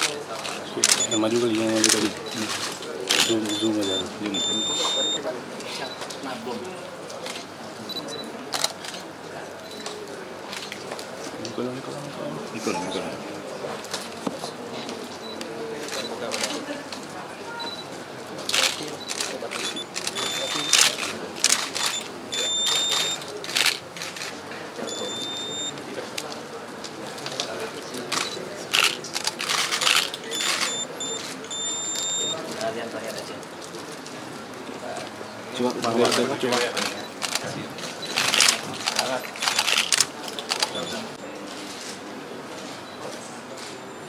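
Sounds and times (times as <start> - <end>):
murmur of voices: 0.0 - 44.0
camera shutters clicking: 0.4 - 3.6, 18.5 - 24.4, 28.1 - 32.3, 38.1 - 41.0
short high beeps: 0.9 - 1.4, 3.1 - 5.2, 19.6 - 20.9, 21.8 - 23.2, 24.9 - 25.8, 30.3 - 32.4.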